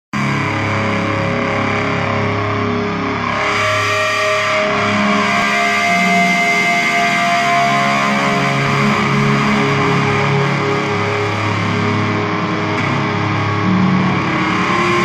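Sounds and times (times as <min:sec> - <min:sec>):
distorted electric guitar: 0:00.2 - 0:15.0
low drone: 0:00.2 - 0:15.0.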